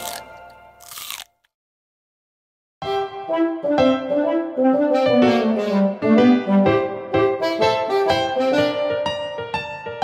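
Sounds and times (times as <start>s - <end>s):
cartoon crunching bite: 0.0s - 1.5s.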